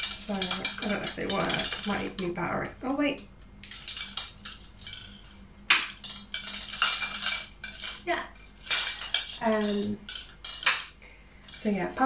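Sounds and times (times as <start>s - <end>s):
plastic lights clinking and rattling: 0.0s - 11.7s.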